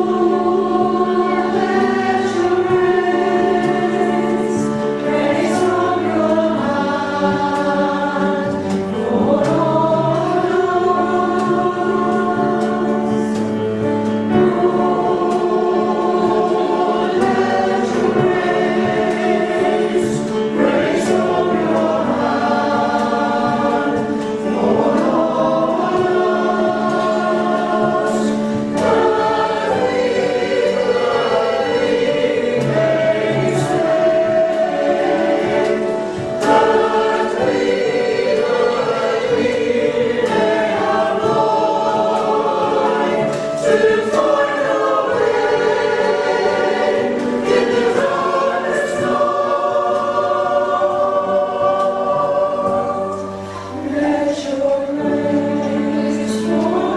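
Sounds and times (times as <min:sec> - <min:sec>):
mixed choir singing: 0:00.0 - 0:56.9.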